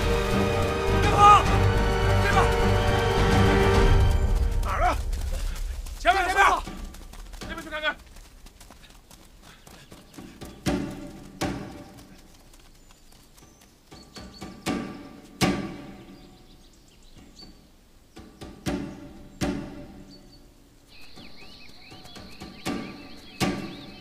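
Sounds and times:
dull thuds: 10.2s - 12.2s, 17.2s - 20.2s.

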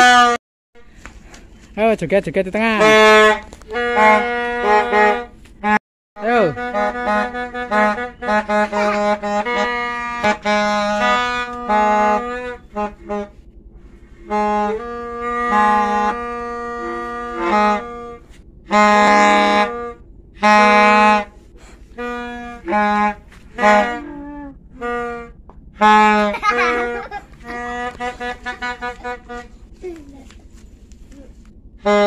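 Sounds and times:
buzzy reedy horn tune: 0.0s - 0.4s, 2.5s - 29.9s, 31.7s - 32.0s.

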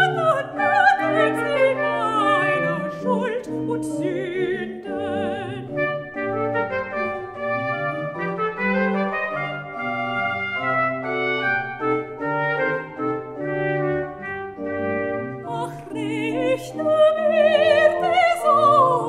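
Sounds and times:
solo oboe melody: 0.0s - 19.0s.

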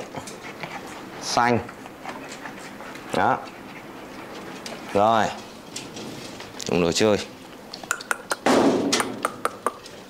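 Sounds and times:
puppies scrambling in metal pen: 0.0s - 7.4s.

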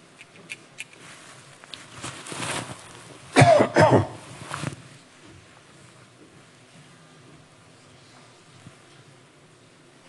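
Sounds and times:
person coughing: 3.4s - 4.2s.

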